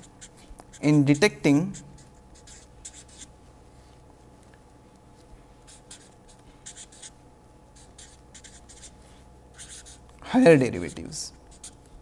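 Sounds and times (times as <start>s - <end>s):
marker scratching on paper: 0.0s - 3.3s, 5.7s - 7.1s, 7.8s - 10.0s, 10.8s - 11.8s
low background hum: 0.0s - 12.0s.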